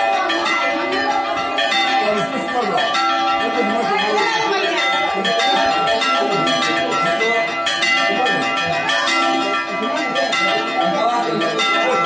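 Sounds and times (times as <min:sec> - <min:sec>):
church bells pealing: 0:00.0 - 0:12.0.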